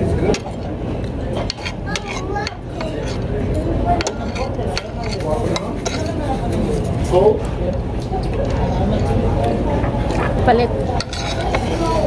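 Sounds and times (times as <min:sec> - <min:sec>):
faint background voices: 0:00.0 - 0:12.0
room murmur: 0:00.0 - 0:12.0
dishes and cutlery clinking: 0:01.4 - 0:03.3, 0:04.0 - 0:06.6, 0:10.9 - 0:12.0.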